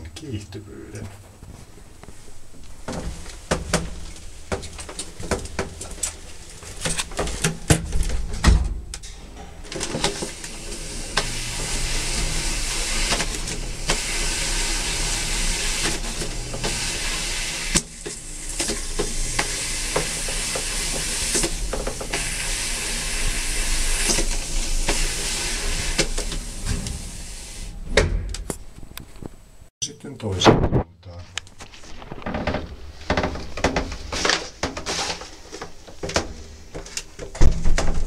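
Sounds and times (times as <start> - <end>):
elevator hiss and hum: 9.0 - 28.0.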